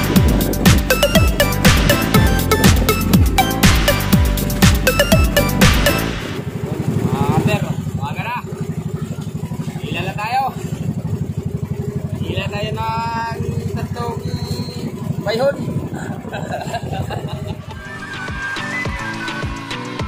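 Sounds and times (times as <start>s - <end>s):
electronic dance music: 0.0s - 6.4s, 17.7s - 20.0s
boat engine running: 0.0s - 20.0s
voices calling out: 4.8s - 18.8s.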